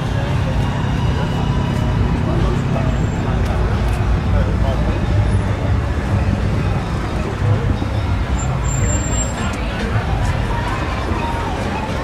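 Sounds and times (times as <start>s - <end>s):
people's voices: 0.0s - 12.0s
rumble of vehicles: 0.0s - 12.0s.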